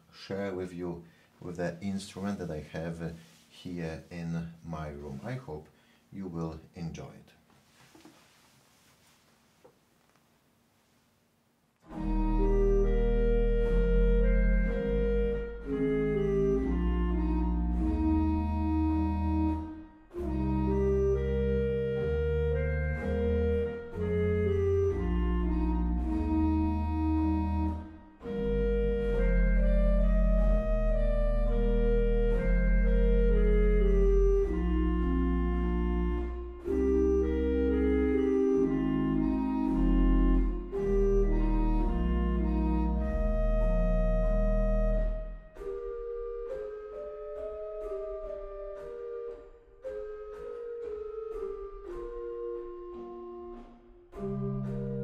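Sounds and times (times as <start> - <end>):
pipe organ playing chords: 11.8 - 55.0.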